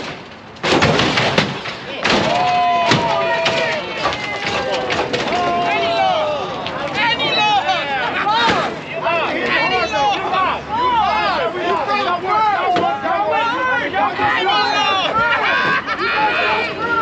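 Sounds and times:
car bangs and slams: 0.0s - 5.8s
crowd shouting and whooping: 2.2s - 17.0s.

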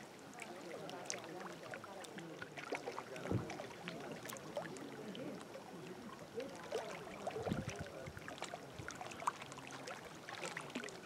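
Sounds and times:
faint distant voices: 0.0s - 11.0s
soft low thump: 3.2s - 3.6s.

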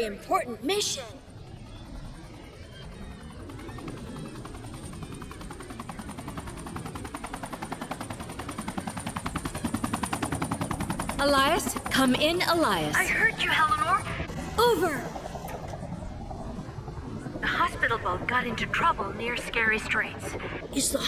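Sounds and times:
helicopter rotor chopping: 0.0s - 21.0s.

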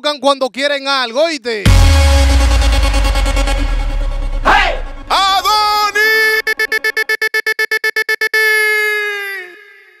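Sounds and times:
stuttering electronic tone: 1.7s - 8.4s.

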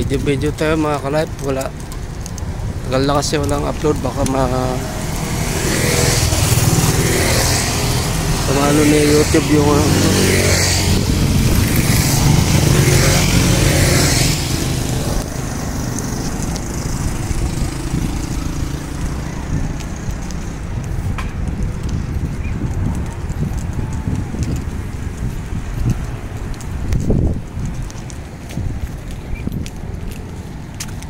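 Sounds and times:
wind noise on microphone: 0.0s - 31.0s
motorcycles riding past: 1.4s - 28.0s.

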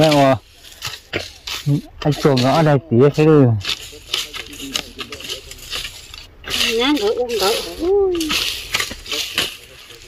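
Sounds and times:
twigs snapping: 0.0s - 2.6s, 3.6s - 10.0s
dry grass and twigs crackling: 0.0s - 10.0s
person speaking: 1.5s - 10.0s.

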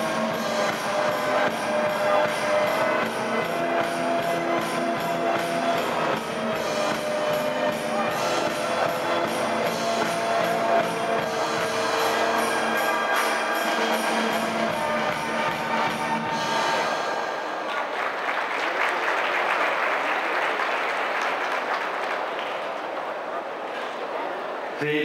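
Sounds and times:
music over sound system: 0.0s - 17.6s
audience applause: 0.0s - 24.2s.

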